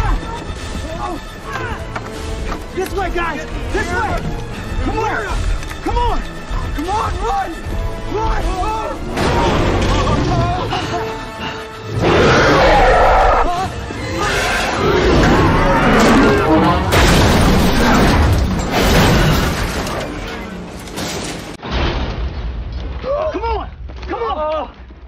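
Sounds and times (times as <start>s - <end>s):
dramatic film music: 0.0s - 25.0s
heavy booms and crashes: 15.0s - 20.0s.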